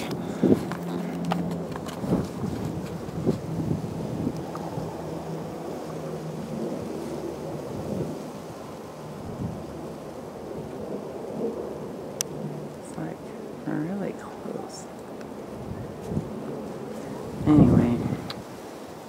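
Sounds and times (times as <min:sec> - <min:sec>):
jet airliner engines rumbling: 0:00.0 - 0:19.0.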